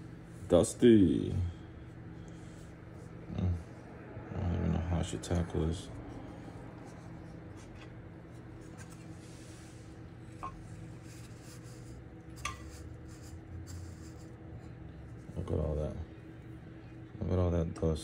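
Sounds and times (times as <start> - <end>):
low machine hum: 0.0 - 18.0.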